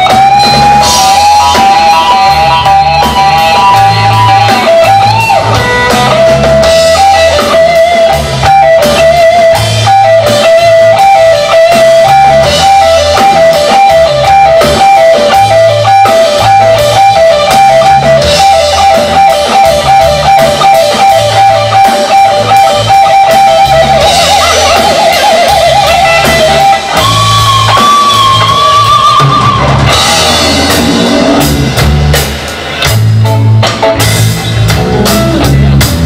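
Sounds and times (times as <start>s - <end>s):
bass notes: 0.0s - 36.0s
drum kit: 0.0s - 36.0s
electric guitar lead: 0.0s - 36.0s.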